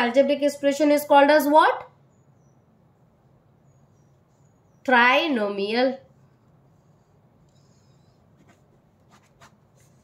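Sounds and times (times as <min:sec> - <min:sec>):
pen scratching on paper: 0:06.2 - 0:10.0.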